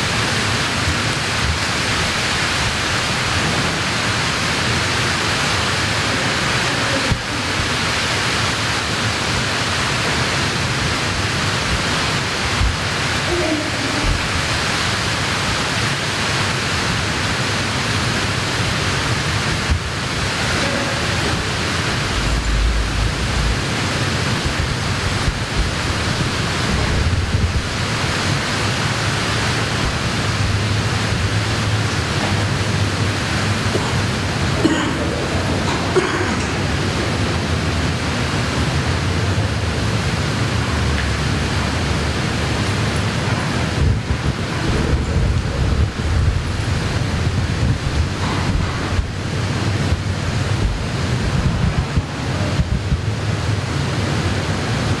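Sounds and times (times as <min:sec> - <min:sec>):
loud steady hiss: 0:00.0 - 0:55.0
low rumble: 0:20.7 - 0:28.3, 0:43.8 - 0:53.1.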